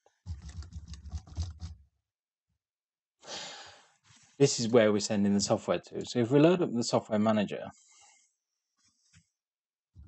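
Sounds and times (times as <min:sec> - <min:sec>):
keyboard typing: 0:00.3 - 0:01.8
short breath: 0:03.2 - 0:04.0.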